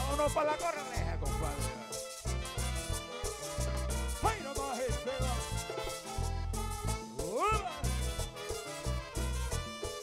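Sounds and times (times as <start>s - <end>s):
latin dance band playing: 0.0s - 10.0s.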